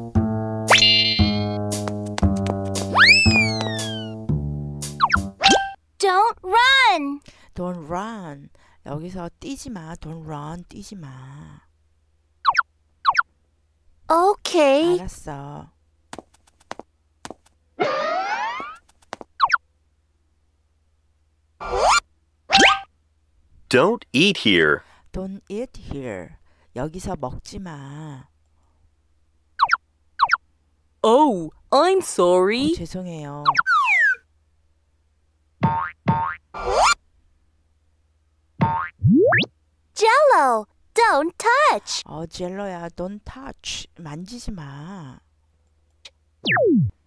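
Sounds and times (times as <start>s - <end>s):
springy cartoon tones: 0.7s - 1.6s, 2.9s - 4.2s, 5.0s - 5.8s, 21.6s - 22.9s, 33.5s - 34.2s, 46.4s - 46.9s
springy rising boing: 38.6s - 39.5s, 46.4s - 47.0s
short rising effects: 46.4s - 47.0s.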